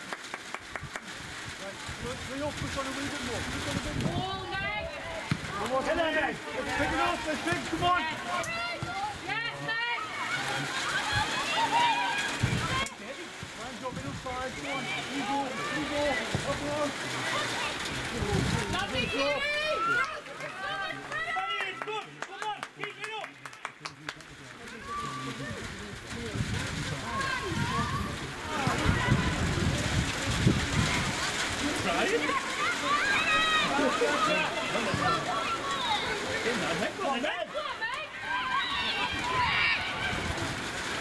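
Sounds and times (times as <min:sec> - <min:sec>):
wind rumble on microphone: 0:00.8 - 0:04.9, 0:12.4 - 0:12.8, 0:18.1 - 0:19.2, 0:25.7 - 0:31.4
people shouting and calling: 0:02.3 - 0:23.2, 0:24.7 - 0:25.8, 0:26.4 - 0:41.0
distant shouts and calls: 0:32.2 - 0:36.5, 0:37.4 - 0:41.0.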